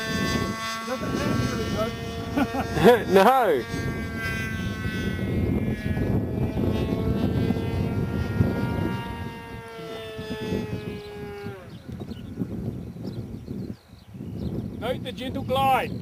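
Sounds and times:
model plane motor whining: 0.0 - 16.0
wind rumble on microphone: 0.0 - 16.0.

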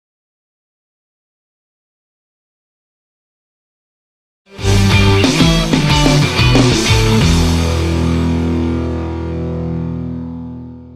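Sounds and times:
distorted electric guitar chord: 4.5 - 10.9
rock music: 4.5 - 10.9.

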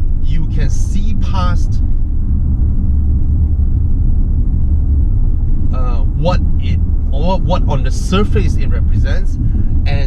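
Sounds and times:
car road and engine noise: 0.0 - 10.0.

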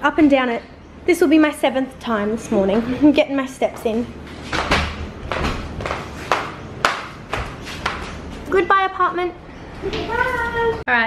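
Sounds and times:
flip-flops slapping on tile stairs: 3.7 - 8.6.

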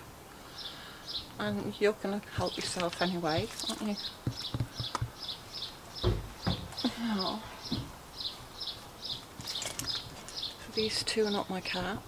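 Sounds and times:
small bird chirping: 2.3 - 11.6
soft knocks: 6.0 - 6.8.

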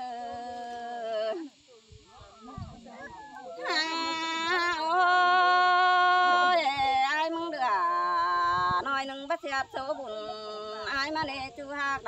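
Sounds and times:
folk duet singing: 0.0 - 1.6, 2.4 - 12.0.

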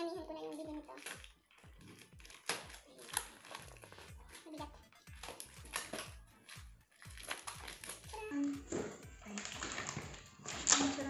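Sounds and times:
paper packaging rustling: 0.4 - 11.0.

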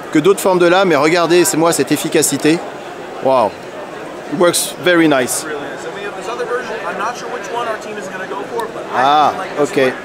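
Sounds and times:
people talking: 0.0 - 2.6, 3.2 - 3.6, 4.2 - 10.0
crowd chatter: 0.0 - 10.0.

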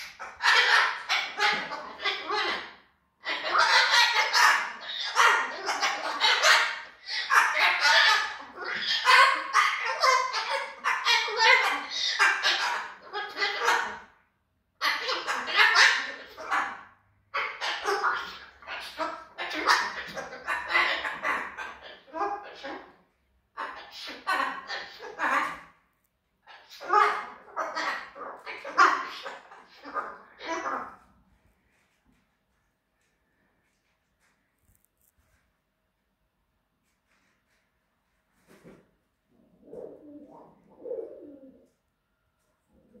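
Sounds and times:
cockatoo calling angrily: 0.0 - 14.1.

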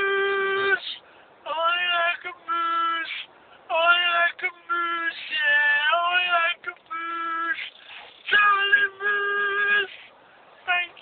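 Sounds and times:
person singing long notes: 0.0 - 3.1.

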